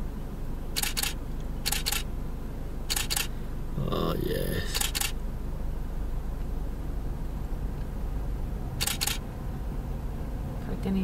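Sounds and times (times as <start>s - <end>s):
low steady rumble: 0.0s - 11.0s
camera shutter clicking: 0.8s - 2.1s, 2.9s - 3.3s, 4.7s - 5.2s, 8.8s - 9.2s.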